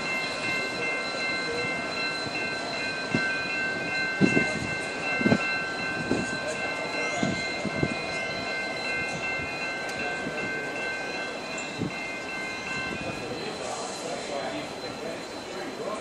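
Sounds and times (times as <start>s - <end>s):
diesel locomotive moving: 0.0s - 16.0s.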